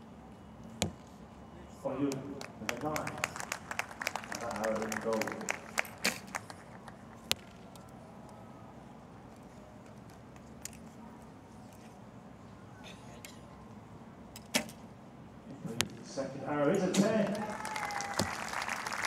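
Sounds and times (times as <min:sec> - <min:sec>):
low outdoor background: 0:00.0 - 0:19.0
claps: 0:02.1 - 0:07.0, 0:17.2 - 0:19.0.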